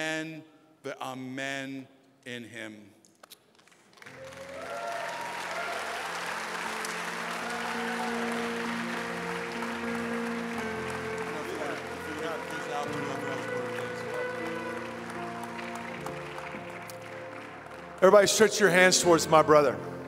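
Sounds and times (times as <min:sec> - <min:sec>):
congregation applauding: 0:03.2 - 0:20.0
sustained instrumental music: 0:05.4 - 0:20.0.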